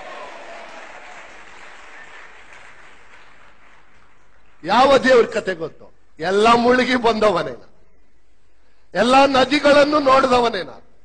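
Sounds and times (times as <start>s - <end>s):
audience applauding: 0.0s - 4.7s.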